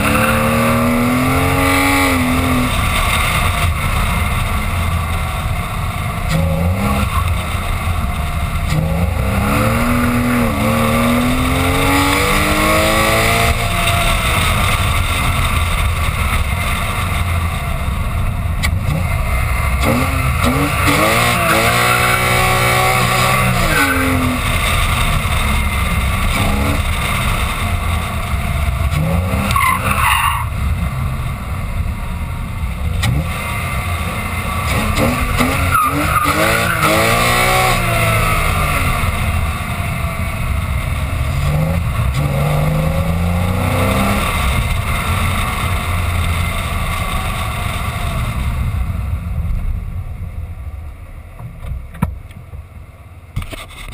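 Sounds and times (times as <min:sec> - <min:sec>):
car engine revving: 0:00.0 - 0:49.7.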